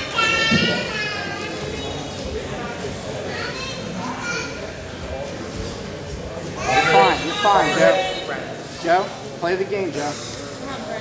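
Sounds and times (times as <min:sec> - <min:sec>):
crowd chatter and calls: 0:00.0 - 0:11.0.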